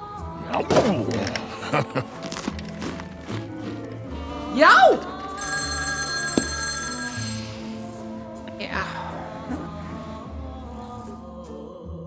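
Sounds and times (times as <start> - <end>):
low background music: 0.0 - 12.0
high bell-like ringing: 5.4 - 7.9.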